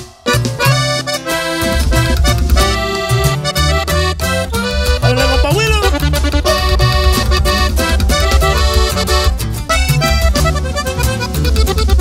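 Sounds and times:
band playing steady rhythm: 0.0 - 12.0
button accordion melody: 0.0 - 12.0
upright bass: 0.0 - 12.0.

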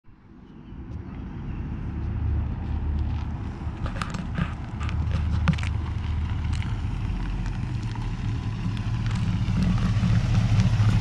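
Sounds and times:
car engine running: 2.6 - 11.0.

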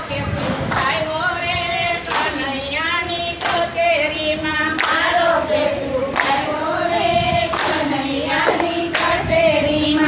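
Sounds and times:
women singing together: 0.0 - 10.0
hands clapping in time: 8.4 - 9.2.

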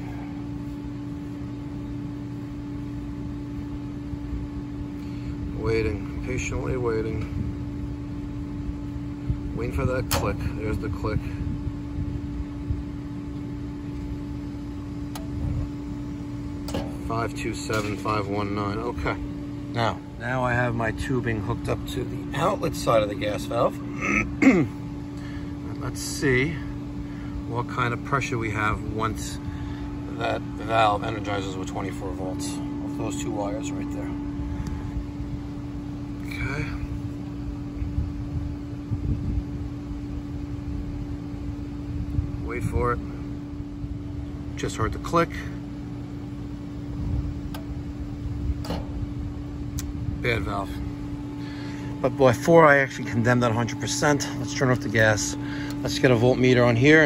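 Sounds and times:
steady low hum: 0.0 - 57.0
man clearing throat: 23.9 - 24.8.

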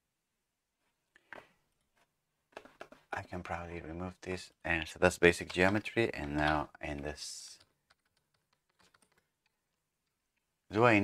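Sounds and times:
computer keyboard keystrokes: 5.4 - 10.2.

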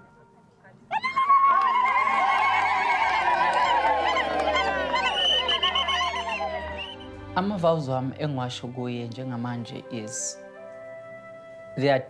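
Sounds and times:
women ululating: 0.9 - 7.0.

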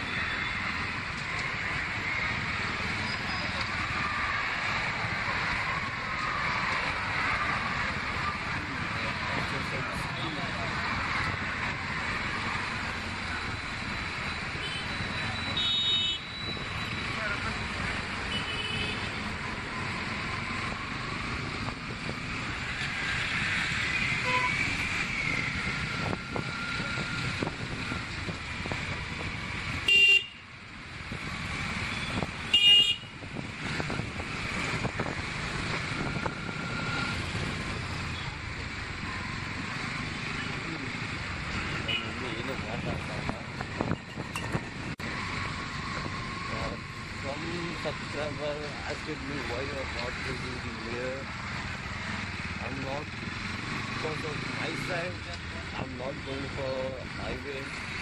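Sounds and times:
motorcycle engine and road noise: 0.0 - 58.0
vehicle horns tooting: 14.6 - 17.0, 18.3 - 19.1, 24.2 - 24.7, 29.8 - 30.4, 31.9 - 33.2, 41.6 - 42.9.

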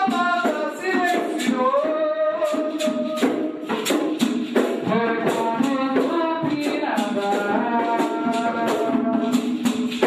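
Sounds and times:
shaken hand percussion: 0.0 - 10.0.

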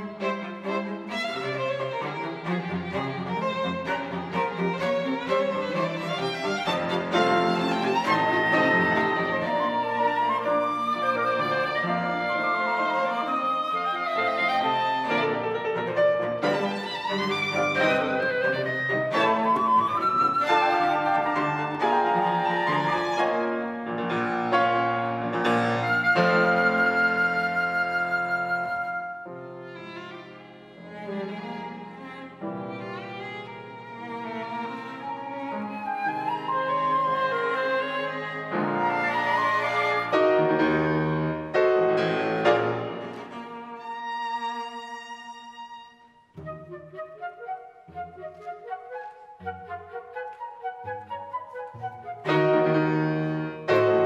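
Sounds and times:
chamber ensemble playing: 0.0 - 32.1, 32.8 - 44.6, 46.4 - 54.0.

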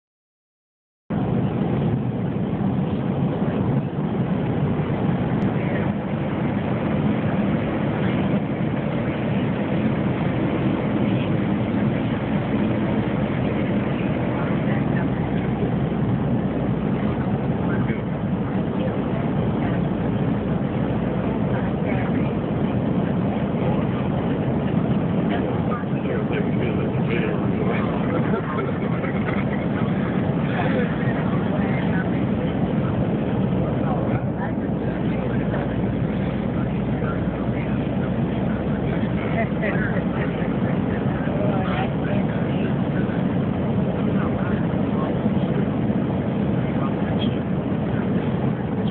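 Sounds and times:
airliner cabin hum in flight: 1.1 - 48.9.

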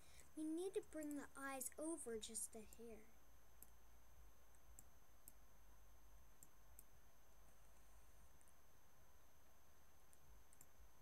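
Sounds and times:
low steady hum: 0.0 - 11.0
computer mouse clicks: 3.6 - 3.8, 4.5 - 5.4, 6.4 - 6.9, 10.1 - 10.8.

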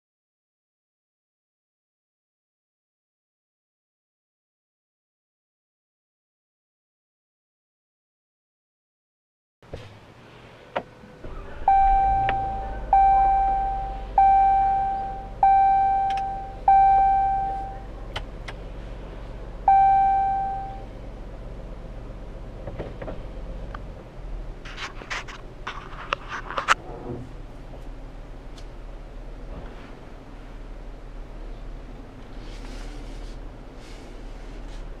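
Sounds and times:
car engine idling: 9.9 - 35.0
dashboard warning chime: 11.6 - 17.9, 19.7 - 20.9.

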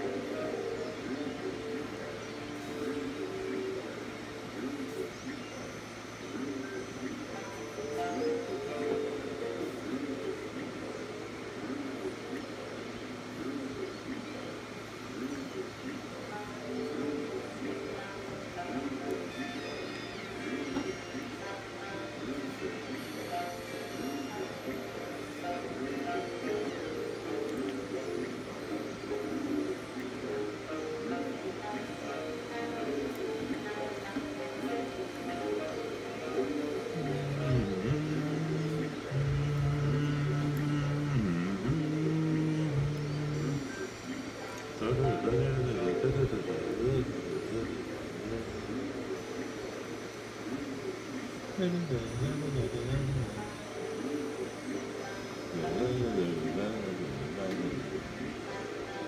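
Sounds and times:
faint voice: 0.0 - 54.8, 55.5 - 58.9
electronic keyboard notes: 0.0 - 59.0.

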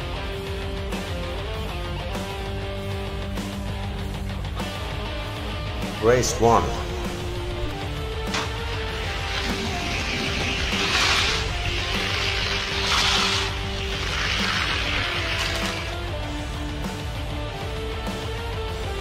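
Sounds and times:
background music: 0.0 - 19.0
toy cars rolling on plastic track: 9.2 - 16.0.

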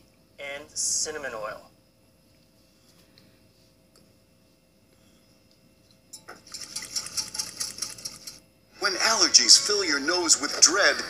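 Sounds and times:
rapid clicking rattle: 6.2 - 8.4.

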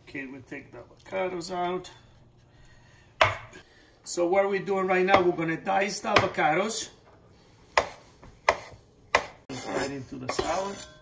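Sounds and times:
knife chopping on wooden board: 3.2 - 3.5, 7.8 - 9.4.

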